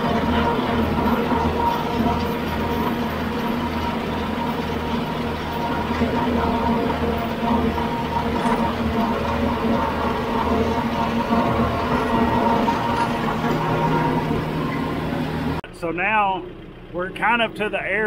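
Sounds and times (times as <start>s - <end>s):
rotary cutter whine: 0.0s - 15.6s
low pulsing throb: 0.0s - 18.0s
tractor diesel engine under load: 0.0s - 18.0s.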